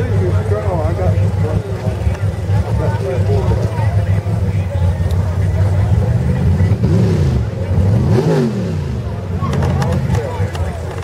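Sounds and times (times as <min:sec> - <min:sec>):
crowd voices: 0:00.0 - 0:11.0
vehicle engine droning and revving: 0:00.0 - 0:11.0.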